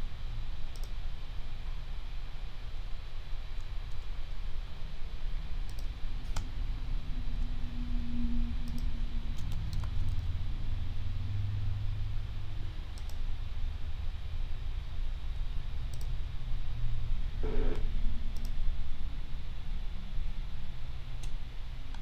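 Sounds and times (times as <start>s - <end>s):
steady low hum: 0.0s - 22.0s
mouse and keyboard clicks: 8.6s - 10.2s.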